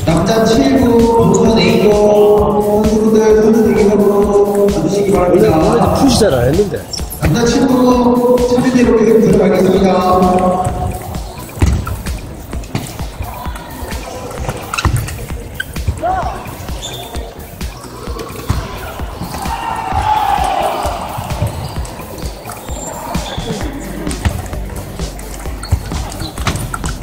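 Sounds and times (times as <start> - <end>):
murmur of voices: 0.0 - 27.0
table tennis balls clicking: 20.3 - 27.0.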